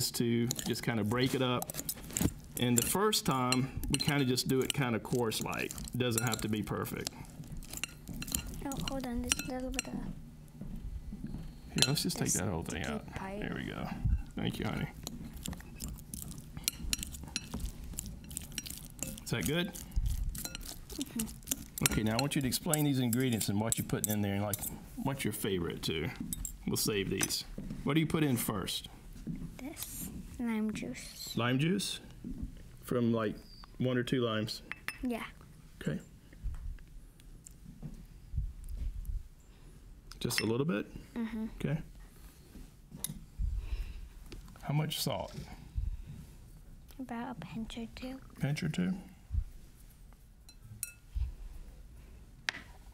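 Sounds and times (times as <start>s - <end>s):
forks clinking against glass bowl: 2.6s - 6.6s, 7.6s - 10.0s, 11.8s - 13.0s, 15.0s - 24.8s, 50.5s - 51.0s.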